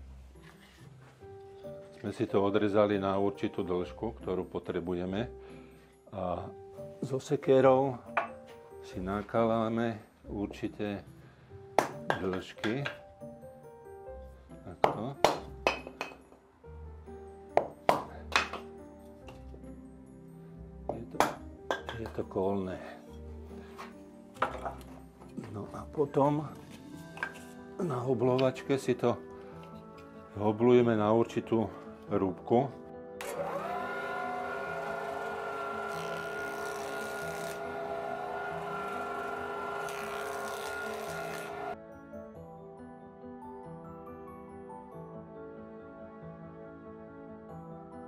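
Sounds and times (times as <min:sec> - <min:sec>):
soft background music: 0:00.0 - 0:48.0
electric planer whining: 0:33.2 - 0:41.8
planer cutting wood: 0:33.2 - 0:41.8
hatchet splitting wood: 0:34.7 - 0:41.8.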